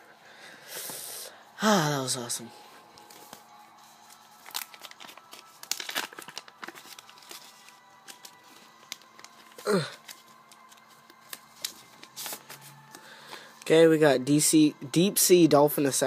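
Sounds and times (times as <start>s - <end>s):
paper rustling and crinkling: 2.9s - 13.6s.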